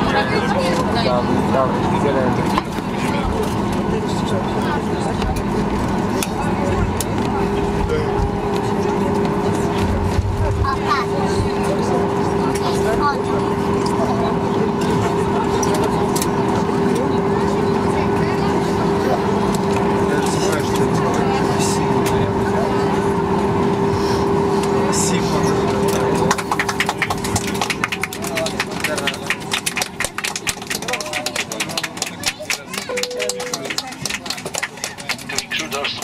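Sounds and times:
aircraft engine hum: 0:00.0 - 0:30.8
passengers talking: 0:00.0 - 0:36.0
steady tone: 0:32.9 - 0:34.0.

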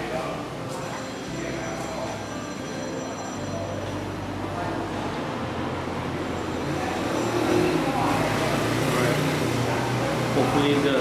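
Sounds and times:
faint voices: 0:00.0 - 0:11.0
road noise rumble: 0:03.3 - 0:11.0.

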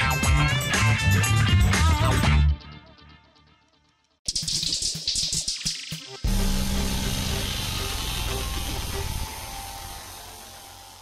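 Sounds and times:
hissing wash: 0:06.3 - 0:11.0.

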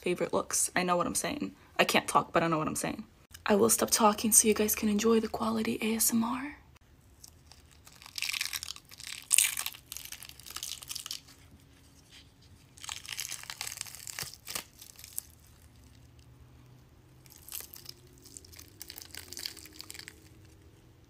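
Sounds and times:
makeup peeling off skin: 0:12.7 - 0:16.1.

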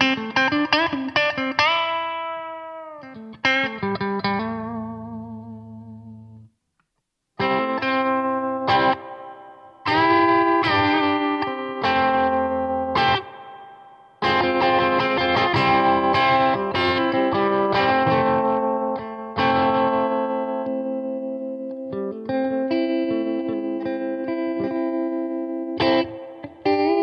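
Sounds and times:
electric guitar chords: 0:00.0 - 0:06.5, 0:07.4 - 0:27.0.

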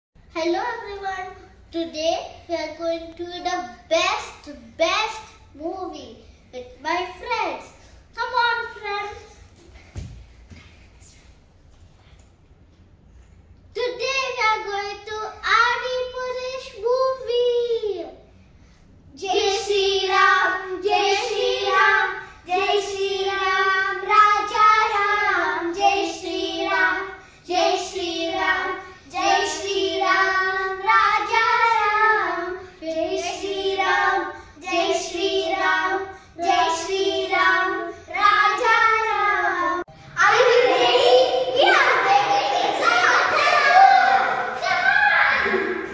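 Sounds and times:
children singing unaccompanied: 0:19.2 - 0:45.9.

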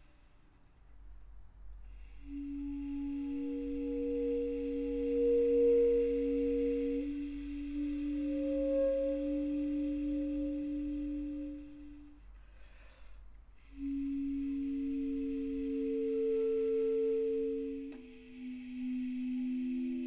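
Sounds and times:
basset horn holding two tones: 0:01.8 - 0:20.0.

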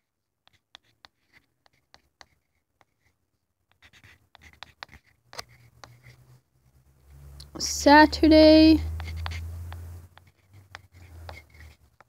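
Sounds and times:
chalk writing on chalkboard: 0:00.4 - 0:06.3, 0:08.3 - 0:12.0.

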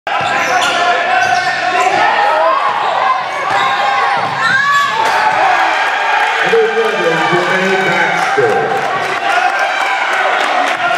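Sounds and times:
sneakers squeaking: 0:00.1 - 0:05.0.

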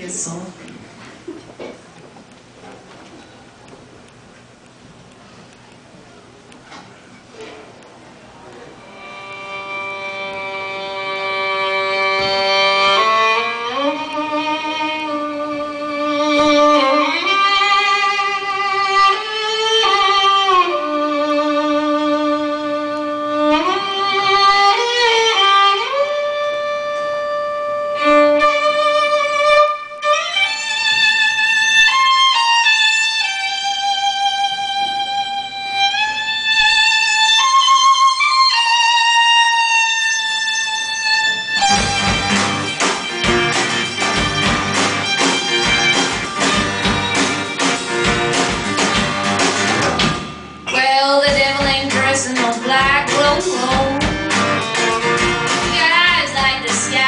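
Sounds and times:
violin playing slow melody: 0:08.8 - 0:48.3.

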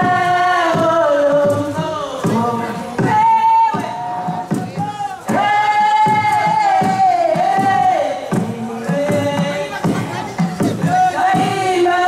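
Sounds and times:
steady drum beats: 0:00.0 - 0:12.0.

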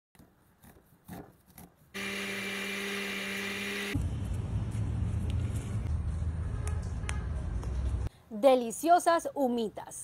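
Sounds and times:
electric blender motor: 0:02.0 - 0:04.0.

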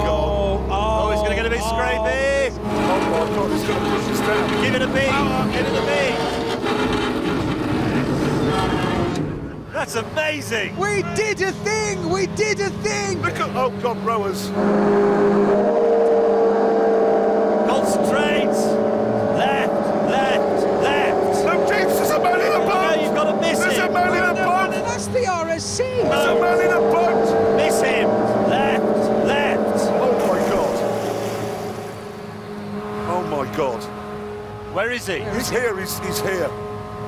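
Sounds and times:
hovercraft engine drone: 0:00.0 - 0:37.0.

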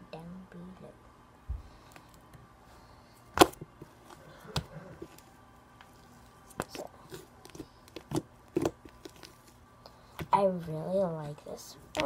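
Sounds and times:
hands squishing slime: 0:05.9 - 0:10.4.

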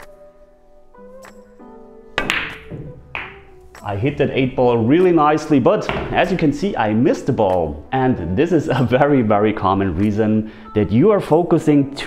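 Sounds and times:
cue striking cue ball: 0:02.2 - 0:03.6, 0:05.8 - 0:06.5
pool balls clacking together: 0:02.2 - 0:03.6, 0:05.8 - 0:06.6.

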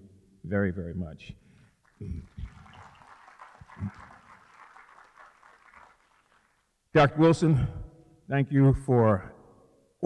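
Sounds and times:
audience applauding: 0:01.8 - 0:06.7.

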